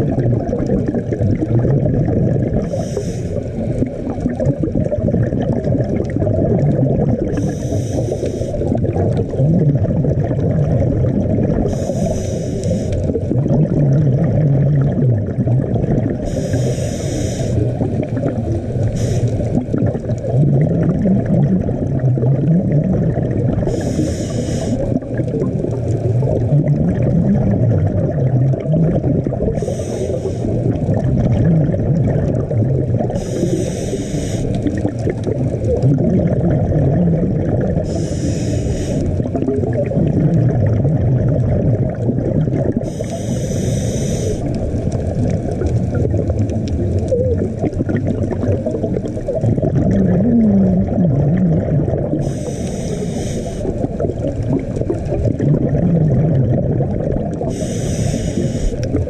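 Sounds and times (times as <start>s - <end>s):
low rumble of water: 0.0s - 59.0s
regulator bubbles hissing underwater: 0.0s - 59.0s.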